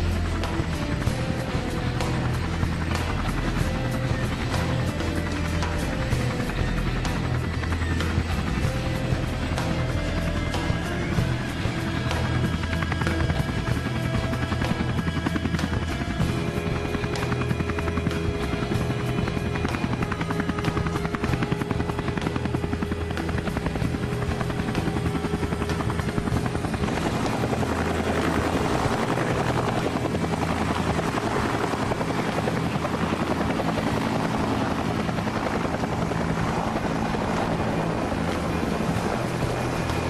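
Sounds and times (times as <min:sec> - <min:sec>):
background music: 0:00.0 - 0:40.0
helicopter rotor chop: 0:00.0 - 0:40.0.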